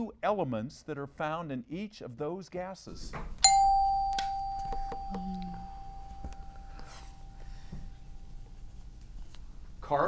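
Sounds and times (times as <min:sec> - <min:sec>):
quiz show bell chime: 0:03.4 - 0:07.4.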